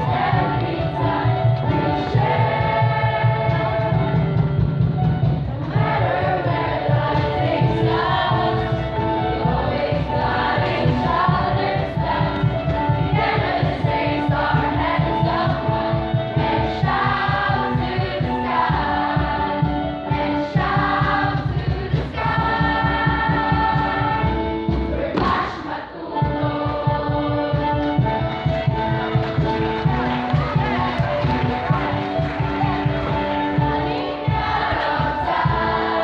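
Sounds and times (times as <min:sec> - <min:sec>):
choir singing: 0:00.0 - 0:04.3, 0:05.5 - 0:36.0.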